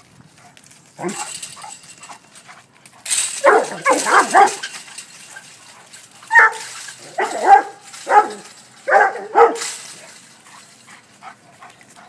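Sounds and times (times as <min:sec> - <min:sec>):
scuffling noise: 0:00.0 - 0:12.0
dog barking loudly: 0:03.4 - 0:04.6, 0:06.3 - 0:09.8.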